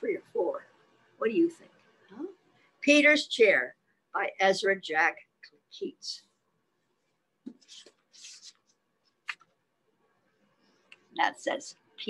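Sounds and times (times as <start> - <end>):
paper rustling: 7.5 - 9.6.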